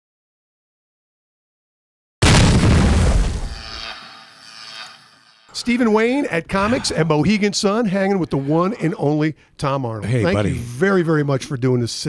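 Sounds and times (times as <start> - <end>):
cinematic boom tail: 2.2 - 3.6.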